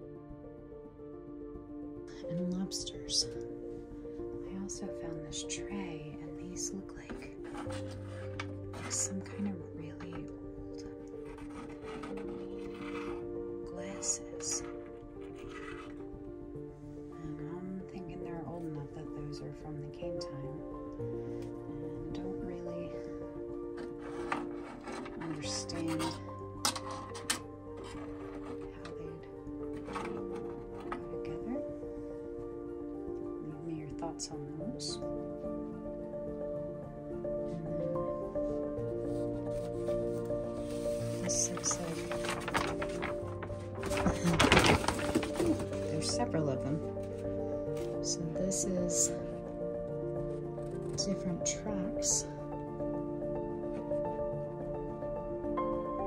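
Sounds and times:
background music with held notes: 0.0 - 56.0
metal hook scraping on wood: 14.7 - 16.0, 23.8 - 28.9, 29.6 - 31.1.

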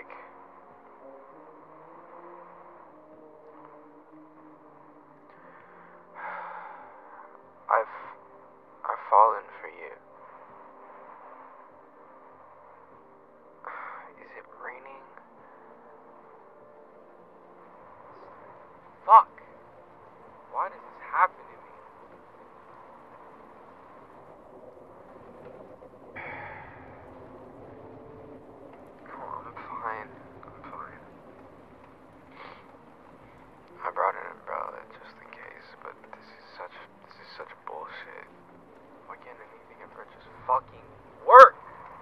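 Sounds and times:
low hum: 0.0 - 42.0
breathy sigh: 5.3 - 7.3, 13.7 - 14.1, 26.2 - 27.2
steady hiss: 15.0 - 42.0.

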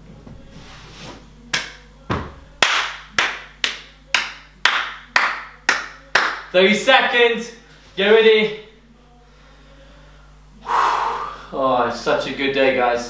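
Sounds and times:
hands clapping in a steady beat: 1.5 - 6.6.

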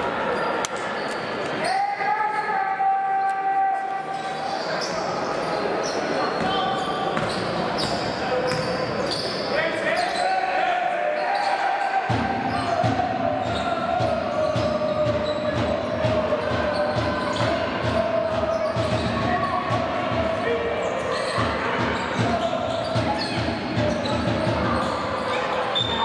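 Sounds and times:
voices: 0.0 - 26.0.

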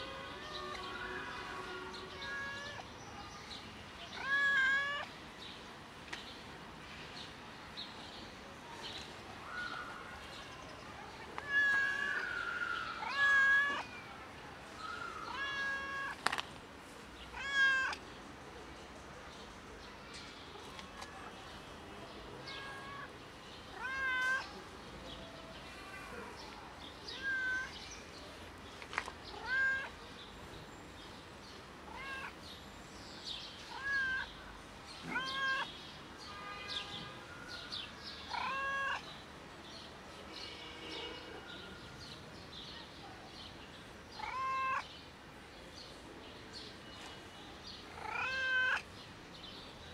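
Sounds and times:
cat meowing: 4.2 - 5.1, 11.4 - 13.9, 15.3 - 16.2, 17.3 - 18.0, 22.4 - 23.1, 23.8 - 24.5, 27.1 - 27.8, 29.4 - 29.9, 31.9 - 32.4, 33.7 - 34.3, 35.0 - 35.7, 38.3 - 39.0, 44.2 - 44.9, 48.0 - 48.8.

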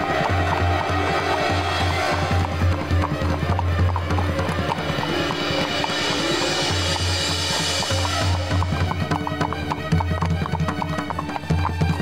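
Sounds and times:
dramatic music with low drone: 0.0 - 12.0
horse hooves clip-clopping: 0.0 - 12.0.

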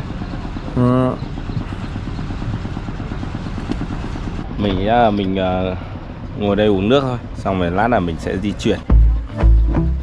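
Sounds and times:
low rumbling background noise: 0.0 - 10.0.

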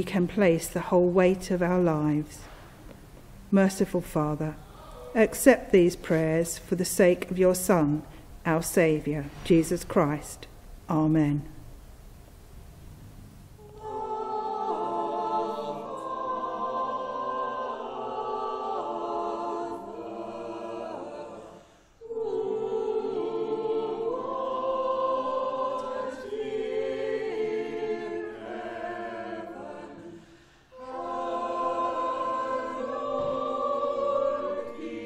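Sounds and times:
choir singing a slow hymn: 13.6 - 35.0.

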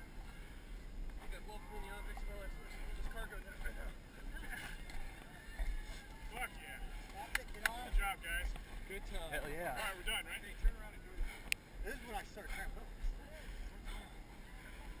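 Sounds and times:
indistinct background voices: 0.0 - 15.0.

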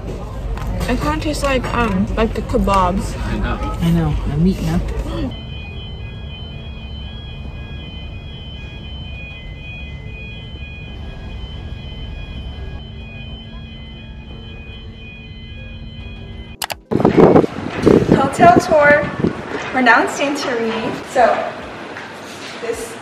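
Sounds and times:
ship engines rumbling: 0.0 - 23.0
woman speaking: 0.8 - 5.4, 18.1 - 19.1, 19.7 - 21.6
high whining tones: 3.5 - 19.4.

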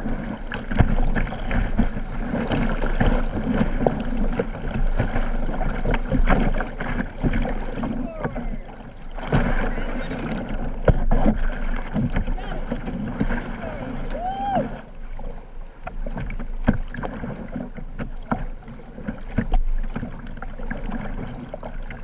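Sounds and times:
paddle splashes and knocks: 0.0 - 22.0
rushing river water: 0.0 - 22.0
person calling out: 7.9 - 8.8, 13.6 - 14.7.

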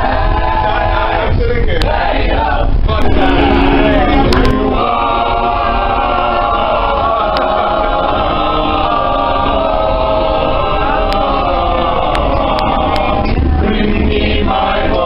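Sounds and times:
a cappella group singing: 0.0 - 15.0.

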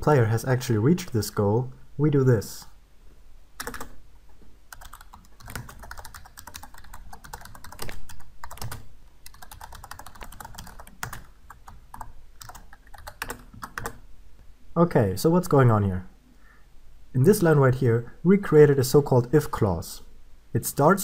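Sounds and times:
faint low hum: 0.0 - 21.0
keyboard typing clicks: 3.6 - 4.0, 4.7 - 14.0.

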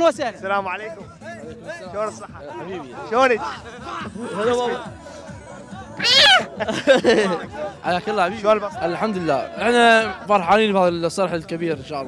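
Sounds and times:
child's high-pitched squeal: 6.0 - 6.5.

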